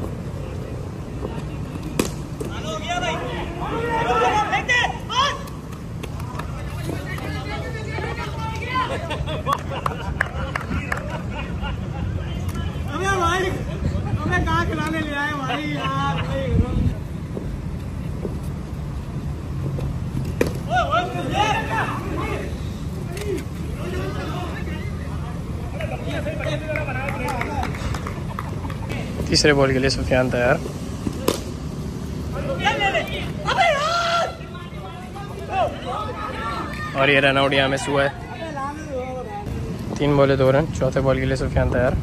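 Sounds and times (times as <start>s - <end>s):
players calling and shouting: 0.0s - 42.0s
cricket ball crack: 1.3s - 2.6s, 31.0s - 31.6s
people calling out loudly: 32.4s - 37.2s.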